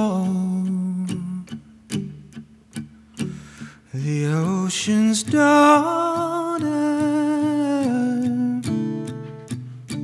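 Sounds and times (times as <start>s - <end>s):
acoustic guitar strumming: 0.0s - 10.0s.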